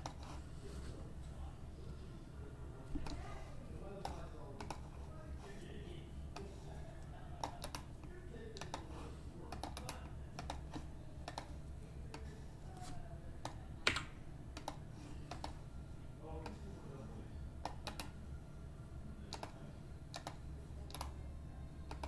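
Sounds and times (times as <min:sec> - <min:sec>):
steady low hum: 0:00.0 - 0:22.0
typing on computer keyboard: 0:07.4 - 0:07.9, 0:09.5 - 0:11.5, 0:17.6 - 0:18.1, 0:19.3 - 0:21.2.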